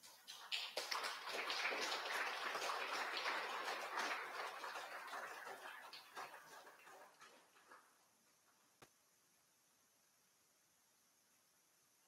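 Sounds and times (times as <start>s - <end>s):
congregation applauding: 0.0s - 7.2s.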